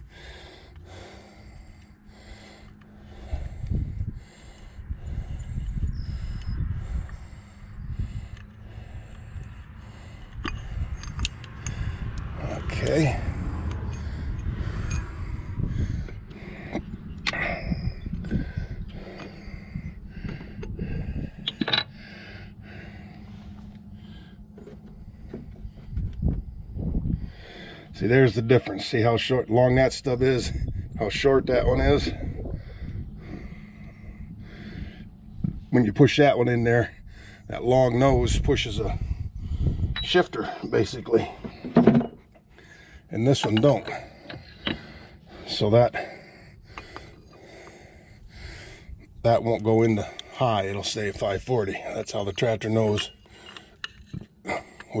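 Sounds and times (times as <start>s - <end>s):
low rumble: 0.0s - 28.2s, 30.1s - 36.1s, 36.7s - 40.2s
metal clicks and knocks: 21.4s - 22.0s.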